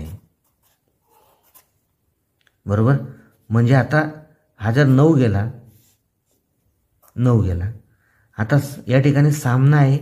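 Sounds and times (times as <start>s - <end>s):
pencil scratching on paper: 0.0s - 1.8s.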